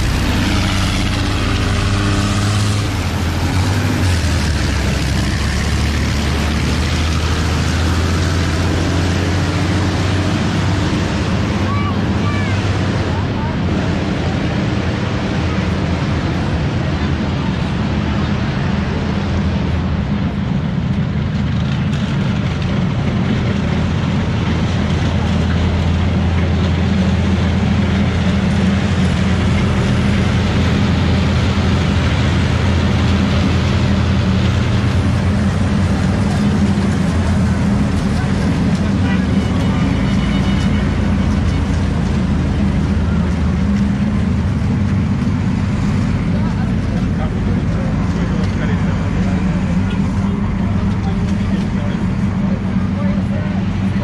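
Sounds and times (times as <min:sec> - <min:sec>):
armoured vehicles driving past: 0:00.0 - 0:54.0.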